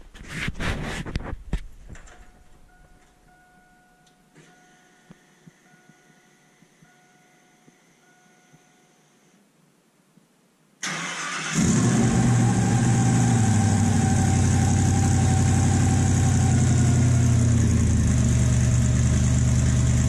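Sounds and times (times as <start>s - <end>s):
engine idling loud: 11.6s - 20.0s.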